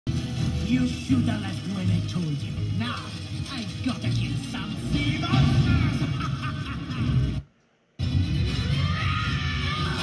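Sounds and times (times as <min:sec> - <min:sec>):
movie sound effects: 0:00.1 - 0:10.0
movie soundtrack music: 0:00.1 - 0:10.0.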